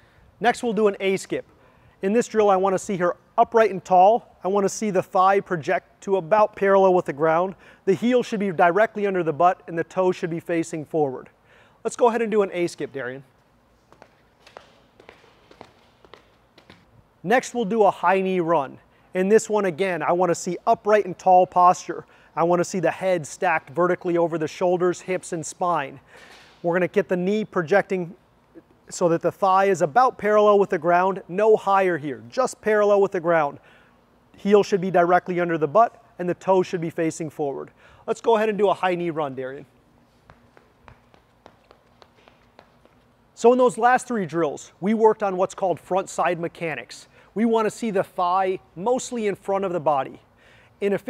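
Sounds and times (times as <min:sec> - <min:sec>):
faint skipping footfalls: 0:12.7 - 0:17.2, 0:39.9 - 0:43.5.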